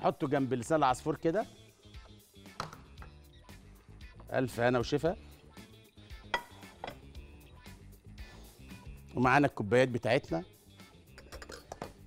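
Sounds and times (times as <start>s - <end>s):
faint background music: 0.0s - 12.0s
dishes clinking on a counter: 6.3s - 7.1s, 11.2s - 12.0s.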